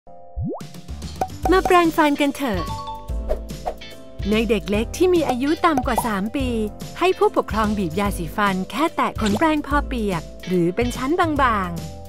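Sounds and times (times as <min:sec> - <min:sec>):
children's music with a beat: 0:01.0 - 0:12.0.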